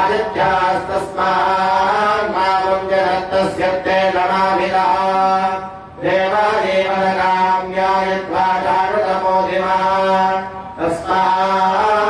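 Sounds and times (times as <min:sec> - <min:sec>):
person chanting a mantra: 0:00.0 - 0:12.0
steady low hum: 0:00.0 - 0:12.0.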